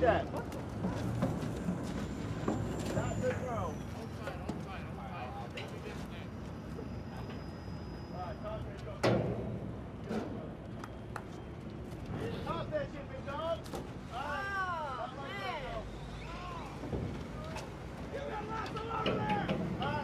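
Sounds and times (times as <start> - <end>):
boat engines droning: 0.4 - 11.9, 13.9 - 20.0
voices calling: 2.1 - 9.0, 12.1 - 20.0.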